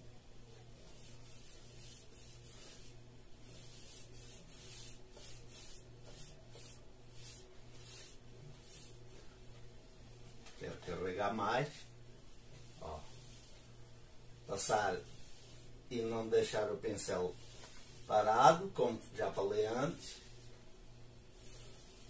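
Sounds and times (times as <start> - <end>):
hissing paintbrush strokes: 0.7 - 9.7, 11.6 - 18.9, 19.6 - 22.0.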